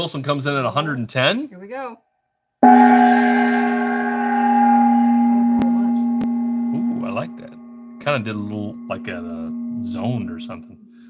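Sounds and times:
gong ringing: 2.6s - 10.5s.

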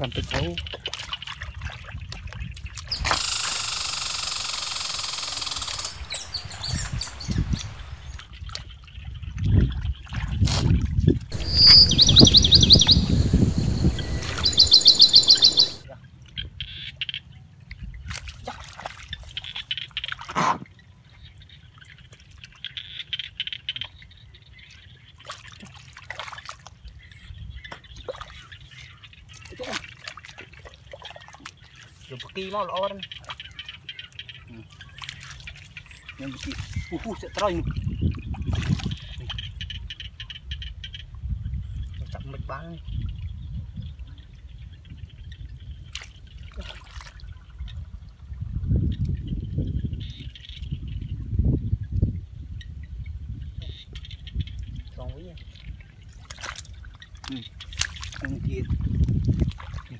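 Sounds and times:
water splashing and trickling: 0.0s - 3.2s, 5.7s - 16.4s, 17.5s - 40.1s, 41.2s - 51.2s, 53.6s - 59.9s
loud hiss-like noise: 11.4s - 15.8s
hands squelching in wet mud: 25.2s - 26.8s, 34.6s - 39.4s, 45.9s - 47.3s, 56.1s - 59.9s.

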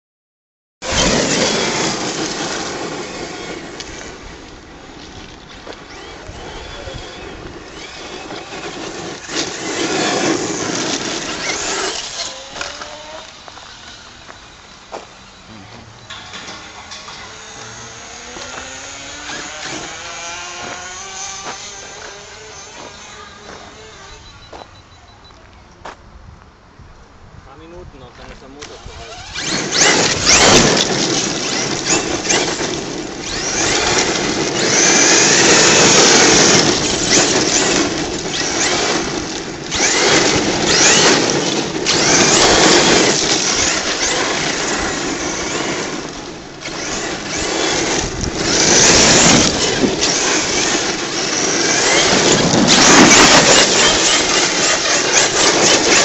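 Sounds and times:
electric motor whine: 0.8s - 24.4s, 28.6s - 56.0s
tyres on loose gravel: 0.8s - 26.1s, 27.7s - 56.0s.

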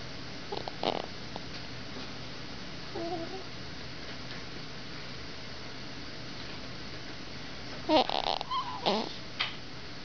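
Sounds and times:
steady background hiss: 0.0s - 10.0s
baby cooing: 7.9s - 9.2s.

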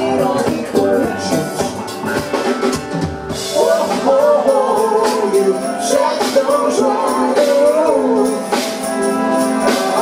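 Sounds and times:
funk band playing: 0.0s - 10.0s.

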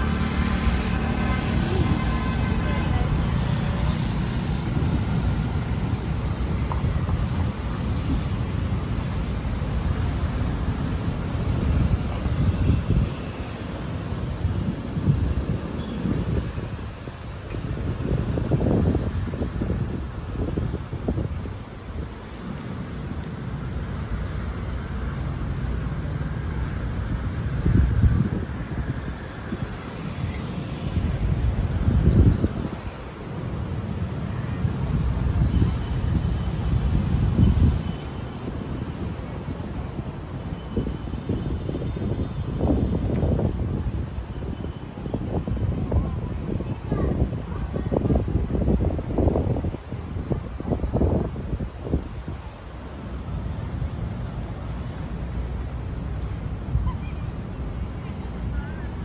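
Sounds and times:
cars passing on street: 0.0s - 59.0s.

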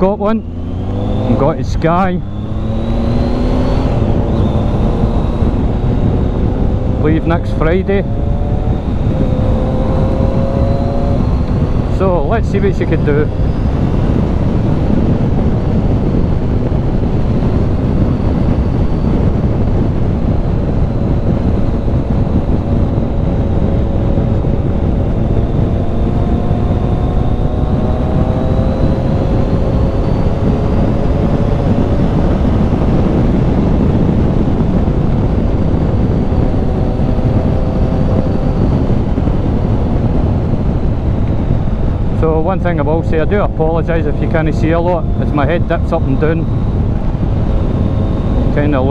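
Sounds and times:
motorcycle engine: 0.0s - 48.9s
wind buffeting microphone: 0.0s - 48.9s.

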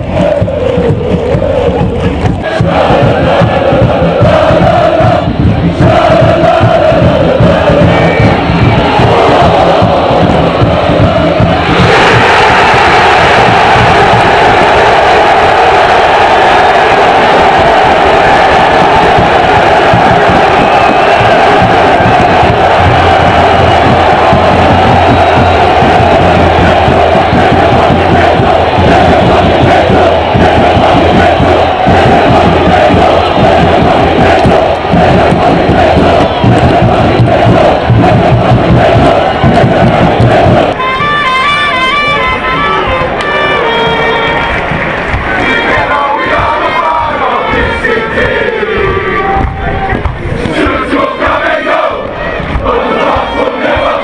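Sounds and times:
crowd chanting: 0.0s - 40.8s, 42.4s - 54.0s.

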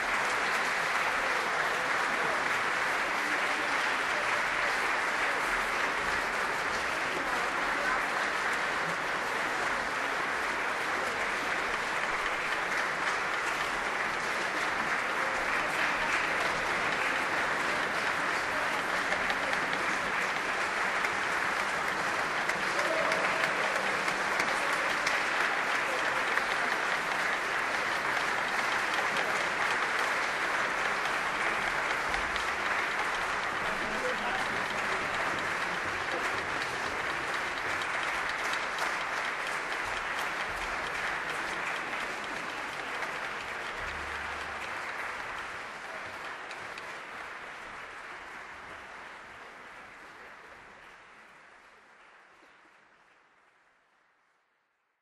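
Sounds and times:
large audience applauding: 0.0s - 54.8s.

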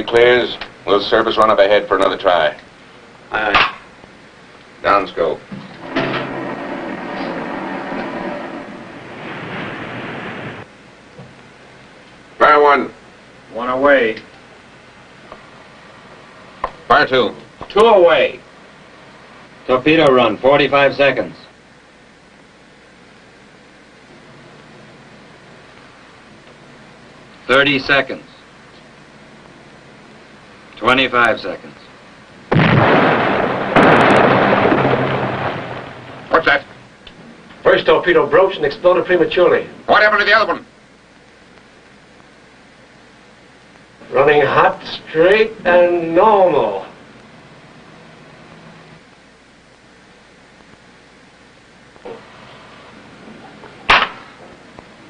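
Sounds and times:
explosion blasts: 5.8s - 10.7s, 32.5s - 36.5s
long explosion rumble: 5.8s - 10.7s, 32.5s - 36.4s.

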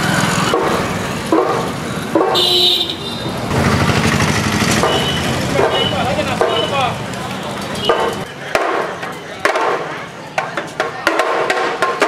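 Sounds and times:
busy street noise: 0.0s - 12.0s
vehicle horn tooting: 2.2s - 3.4s, 4.8s - 6.9s.

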